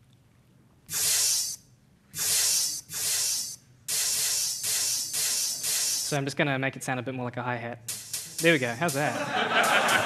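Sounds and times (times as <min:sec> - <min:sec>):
crowd hissing rhythmically: 0:07.9 - 0:10.0.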